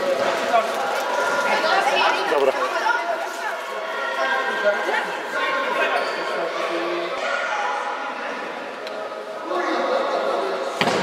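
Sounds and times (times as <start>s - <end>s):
people talking in echoing hall: 0.0s - 11.0s.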